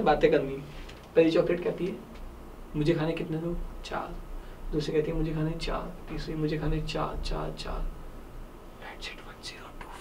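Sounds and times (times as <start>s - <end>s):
man whispering: 8.8s - 10.0s.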